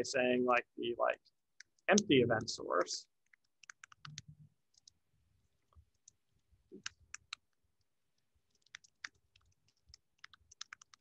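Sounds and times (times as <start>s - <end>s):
computer keyboard keystrokes: 3.2s - 5.0s, 8.5s - 11.0s.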